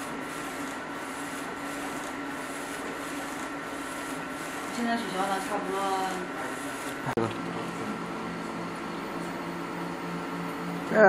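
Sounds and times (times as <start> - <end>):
printer carriage whirring: 0.0 - 11.0.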